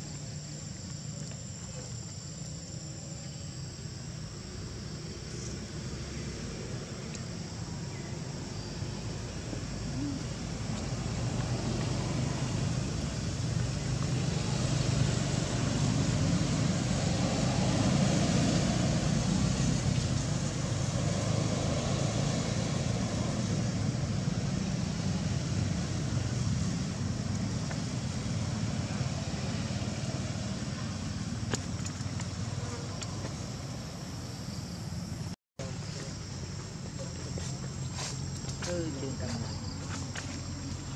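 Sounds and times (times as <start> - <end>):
insects buzzing: 0.0 - 40.9.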